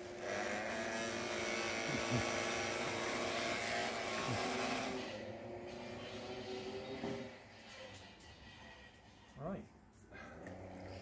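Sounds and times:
small electric motor whining: 0.0 - 7.3.

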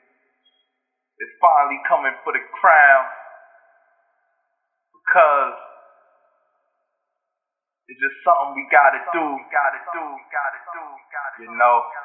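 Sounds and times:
man speaking: 1.2 - 3.5, 5.0 - 5.9, 7.9 - 12.0.

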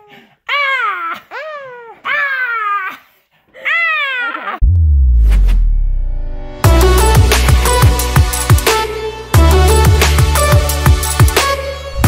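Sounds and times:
electronic music with heavy bass: 4.6 - 12.0.

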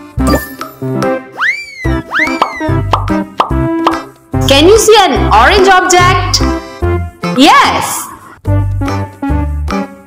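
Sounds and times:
bright children's music: 0.0 - 7.8
cartoon pitch sweep effect: 1.4 - 2.8.

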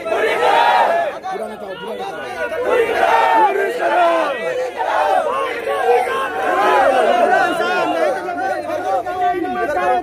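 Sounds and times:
crowd of men shouting: 0.0 - 10.0.

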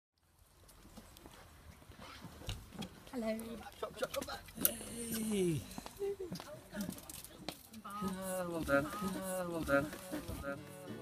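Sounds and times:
faint outdoor background noise: 0.2 - 11.0.

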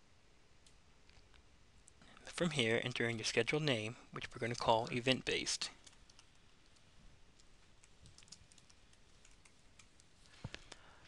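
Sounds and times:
faint keyboard typing: 0.6 - 11.0.

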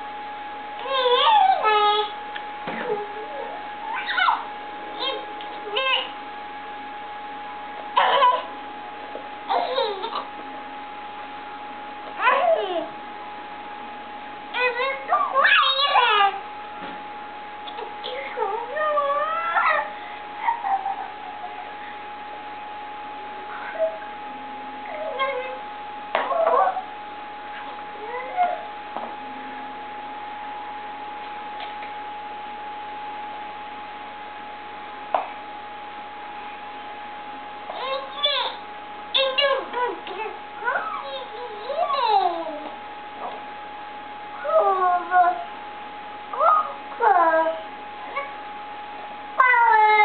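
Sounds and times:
thin steady hum: 0.0 - 50.0
toddler babbling: 0.8 - 2.2, 2.9 - 6.1, 8.0 - 8.5, 9.5 - 10.3, 14.6 - 16.4, 37.7 - 38.6, 39.2 - 42.7
baby's long vocal call: 8.0 - 8.5.

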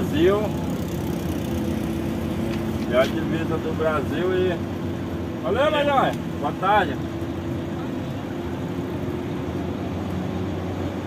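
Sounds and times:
truck engine humming: 0.0 - 11.0.

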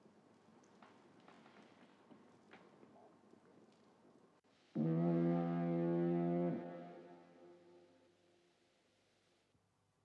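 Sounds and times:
foghorn blast: 4.8 - 8.0.

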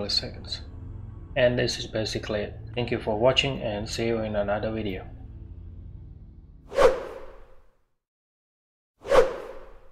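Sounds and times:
whoosh sound effect: 6.7 - 7.6, 9.0 - 9.9.

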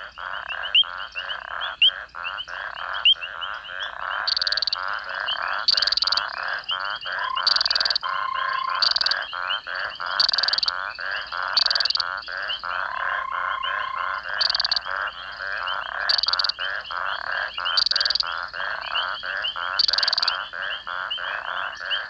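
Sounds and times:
frogs calling: 0.0 - 22.0
sharp high-pitched frog calls: 0.0 - 22.0.

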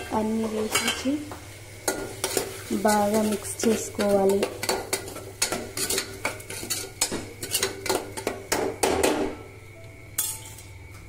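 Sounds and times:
faint sizzle of frying: 0.0 - 11.0
spoon stirring in pot: 1.8 - 8.8.

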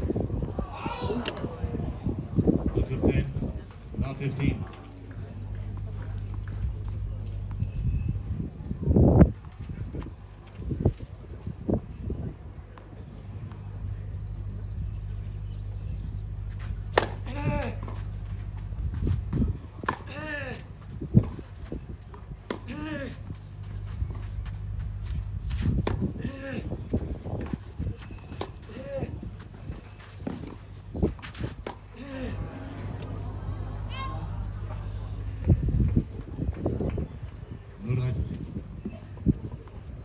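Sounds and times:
steady low hum: 0.0 - 40.0
tennis racket hitting ball: 16.9 - 17.9
players grunting: 31.9 - 35.1.

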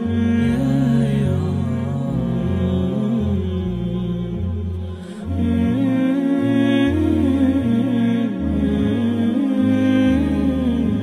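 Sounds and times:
slow chant-like music: 0.0 - 11.0.

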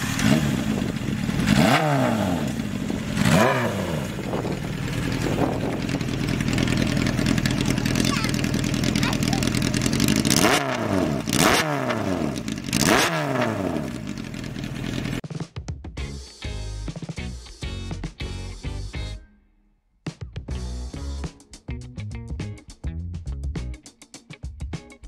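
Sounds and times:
motorcycle engine idling and revving: 0.0 - 15.2.

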